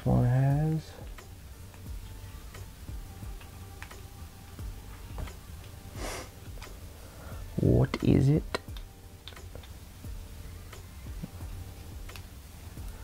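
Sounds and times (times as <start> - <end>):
short hiss: 5.9 - 7.2.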